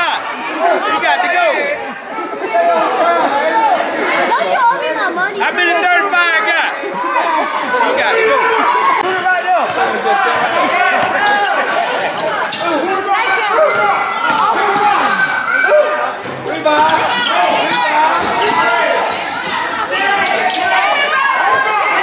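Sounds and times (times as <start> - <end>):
voices calling out: 0.0 - 22.0.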